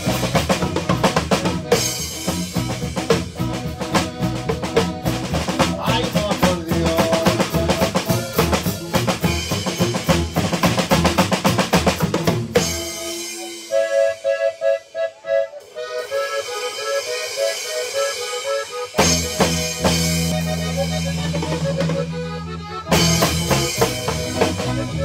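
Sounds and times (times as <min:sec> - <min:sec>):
drum kit playing: 0:00.0 - 0:25.0
heavy bass line: 0:00.0 - 0:25.0
melody of quick repeated notes: 0:12.6 - 0:25.0.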